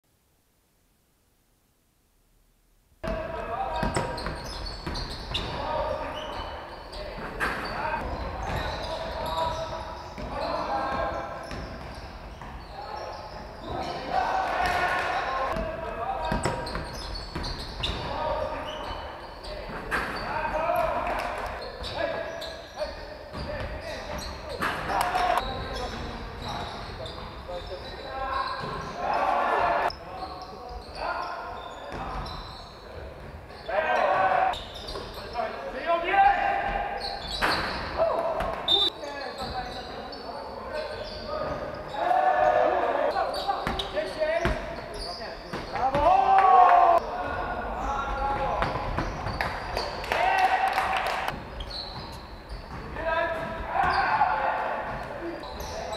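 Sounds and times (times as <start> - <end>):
ball bouncing on wooden court: 3.0 - 5.7, 7.2 - 12.7, 14.6 - 18.2, 43.6 - 44.9, 48.4 - 49.6
players shouting: 12.7 - 16.6, 28.8 - 29.9, 33.6 - 34.6, 41.9 - 43.4, 45.7 - 48.6, 50.0 - 51.3, 53.0 - 55.0.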